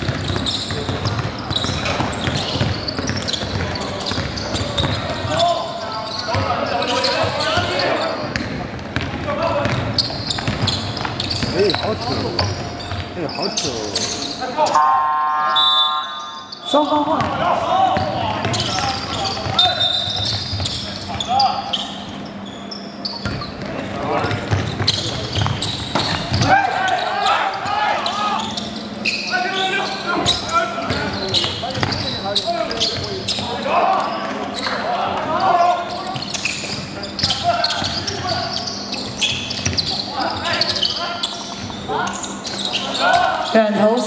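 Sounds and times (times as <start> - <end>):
basketball bouncing on hardwood: 0.0 - 5.0, 8.3 - 11.8
players calling out: 0.1 - 44.0.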